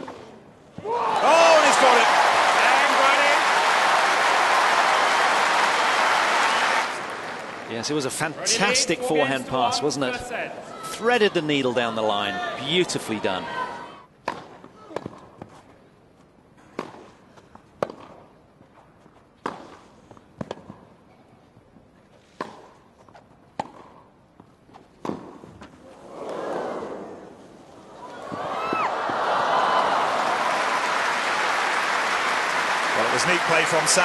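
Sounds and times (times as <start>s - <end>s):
crowd cheering: 0.8s - 9.8s, 27.9s - 34.0s
crowd applauding: 1.2s - 8.0s, 28.2s - 34.0s.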